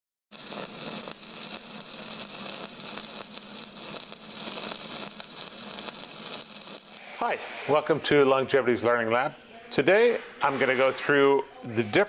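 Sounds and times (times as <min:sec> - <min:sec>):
steady hiss: 0:00.3 - 0:11.9.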